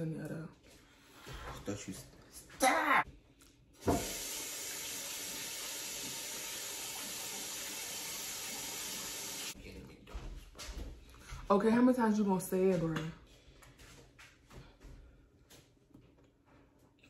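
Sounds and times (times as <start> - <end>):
sink tap running: 3.8 - 9.6.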